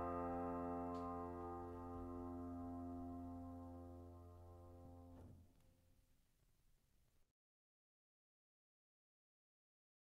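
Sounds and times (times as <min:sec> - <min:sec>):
piano chord ringing: 0:00.0 - 0:05.3.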